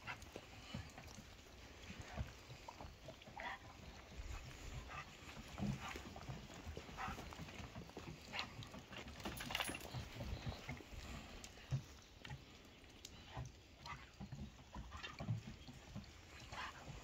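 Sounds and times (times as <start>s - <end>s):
footsteps on wooden deck: 2.0s - 10.8s.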